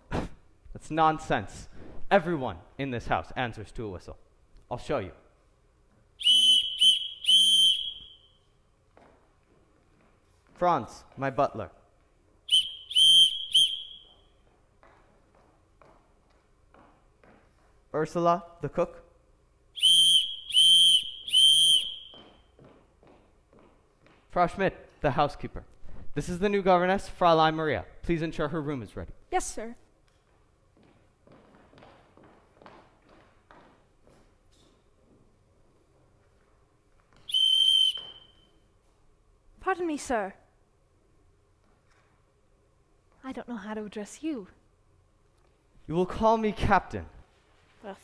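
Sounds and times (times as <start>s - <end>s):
signal whistle blasts: 6.2s - 8.5s, 12.5s - 14.4s, 19.8s - 22.5s, 37.2s - 38.7s.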